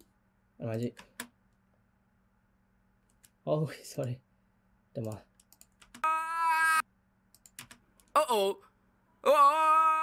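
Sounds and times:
computer keyboard clicks: 0:05.0 - 0:06.0, 0:07.3 - 0:08.2.

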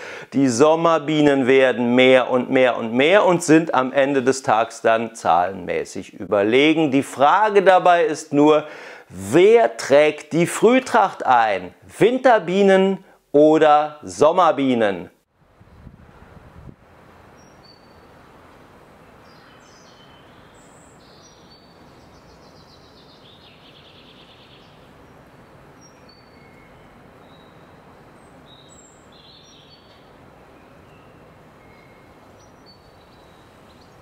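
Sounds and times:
faint outdoor hiss: 0:00.0 - 0:34.0
songbirds chirping: 0:17.1 - 0:34.0.

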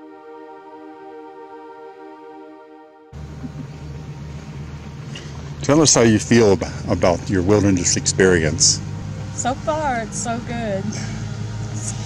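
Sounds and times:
outdoor background hiss: 0:03.2 - 0:12.0
steady low hum: 0:03.2 - 0:12.0.

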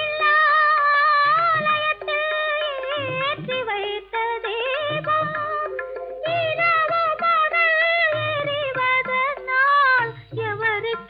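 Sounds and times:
woman singing in high voice: 0:00.0 - 0:11.0.

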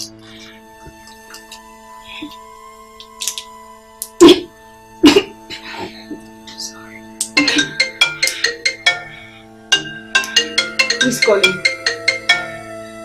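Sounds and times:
melodic phone ringtone: 0:04.2 - 0:13.0.

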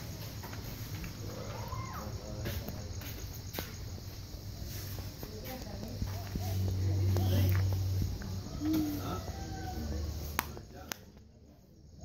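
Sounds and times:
footsteps: 0:00.0 - 0:10.8
distant voices: 0:00.0 - 0:12.0.

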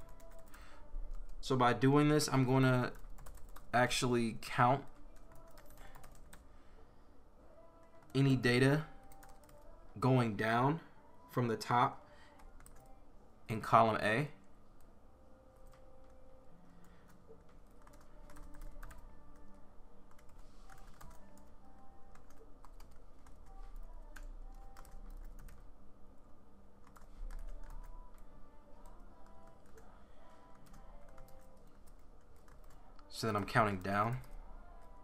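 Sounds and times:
computer keyboard typing: 0:02.6 - 0:03.7, 0:04.8 - 0:06.4, 0:09.0 - 0:09.6, 0:12.4 - 0:12.9, 0:16.8 - 0:25.7, 0:26.8 - 0:28.2, 0:28.8 - 0:35.0.

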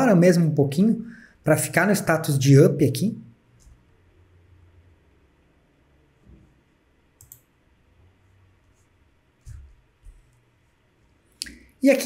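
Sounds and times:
computer mouse clicks: 0:07.2 - 0:07.5.

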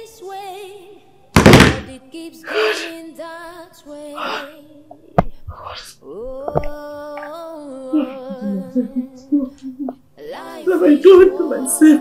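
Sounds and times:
woman humming a melody: 0:06.0 - 0:12.0.

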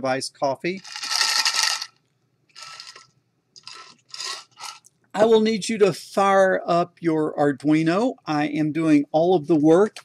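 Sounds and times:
ice cubes rattling in tumbler: 0:00.8 - 0:01.9, 0:02.6 - 0:03.0.

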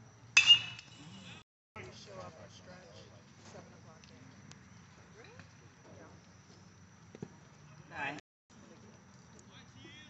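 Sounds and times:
metal bat hitting ball: 0:00.4 - 0:01.2.

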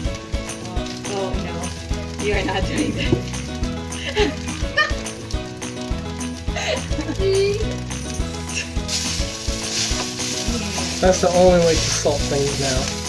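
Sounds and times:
background music with beat: 0:00.0 - 0:13.0
rice sizzling in a wok: 0:00.0 - 0:13.0.

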